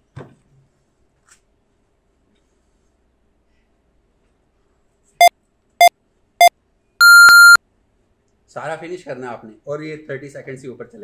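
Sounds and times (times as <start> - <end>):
long high electronic beep: 7.0 - 7.6.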